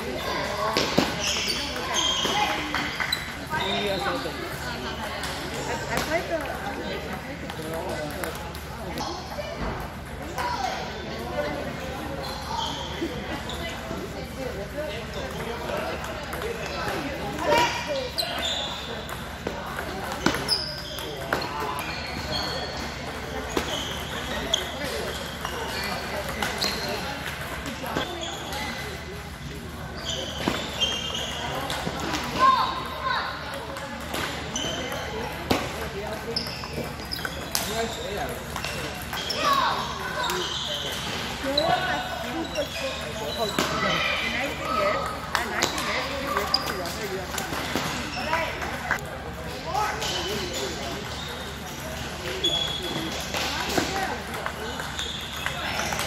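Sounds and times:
voices chattering in a hall: 0:00.0 - 0:56.0.

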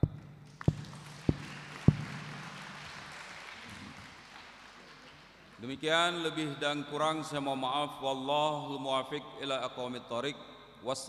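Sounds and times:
audience applause: 0:00.6 - 0:05.6.

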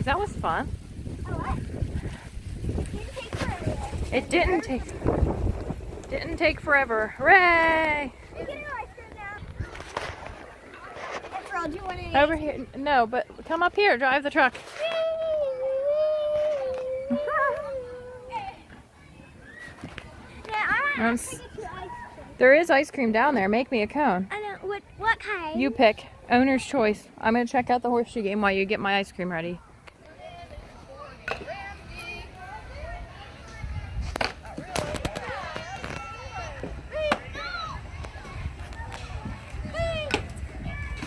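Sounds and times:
children calling and chattering: 0:00.0 - 0:28.4, 0:29.5 - 0:41.0.

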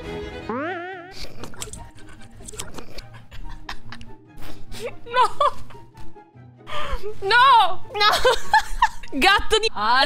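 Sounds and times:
music: 0:00.0 - 0:10.0
wobbling pitch glide: 0:00.5 - 0:01.2.

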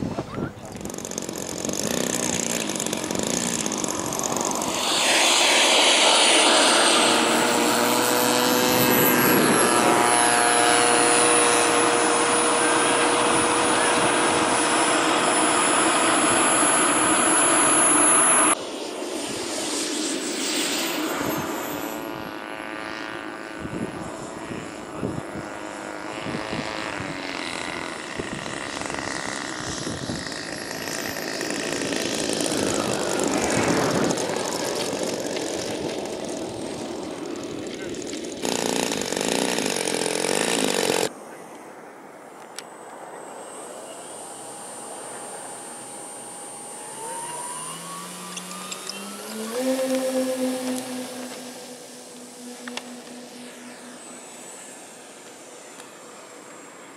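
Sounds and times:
model airplane propeller and motor: 0:00.1 - 0:41.1, 0:42.5 - 0:56.9.

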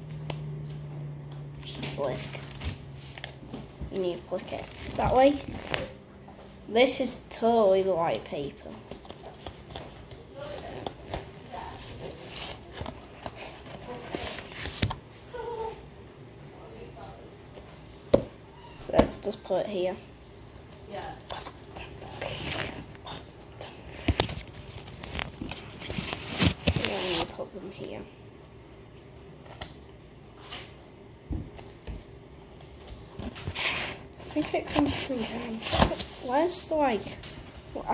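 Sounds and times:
paper rustling: 0:09.0 - 0:15.0, 0:24.0 - 0:27.4.

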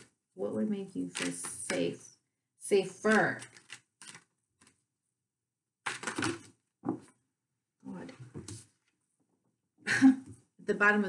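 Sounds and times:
cards being shuffled: 0:01.1 - 0:02.0, 0:03.0 - 0:04.8, 0:05.8 - 0:07.1.

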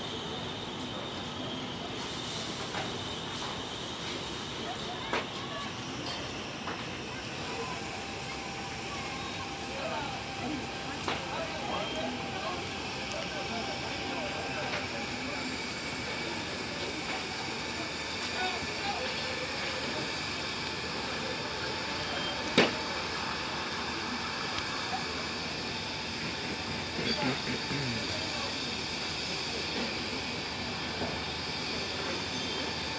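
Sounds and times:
faint distant voices: 0:04.4 - 0:32.9.

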